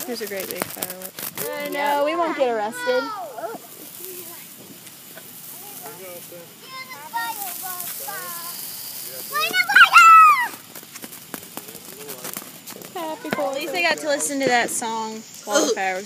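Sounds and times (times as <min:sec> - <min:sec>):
firework hissing and crackling: 0:00.0 - 0:16.0
children's voices: 0:01.4 - 0:04.6, 0:05.4 - 0:10.7, 0:13.0 - 0:14.6
child squealing: 0:09.3 - 0:10.6.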